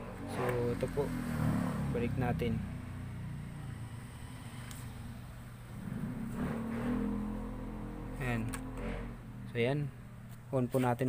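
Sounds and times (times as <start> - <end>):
low droning hum: 3.8 - 10.3.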